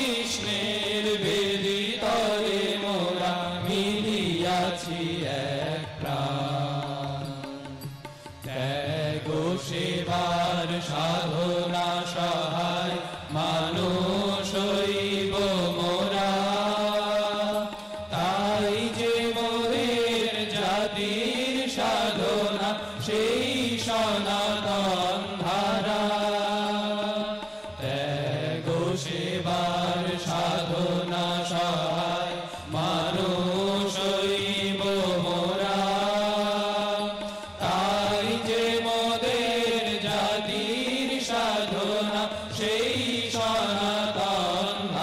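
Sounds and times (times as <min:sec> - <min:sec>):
harmonium: 0:00.0 - 0:45.0
men singing devotional song: 0:00.0 - 0:45.0
tabla: 0:00.0 - 0:45.0.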